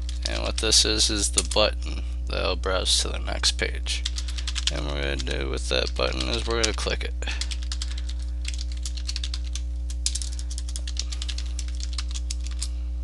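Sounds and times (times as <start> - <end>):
low electrical hum: 0.0 - 13.0
typing on computer keyboard: 4.0 - 4.8, 7.4 - 12.7.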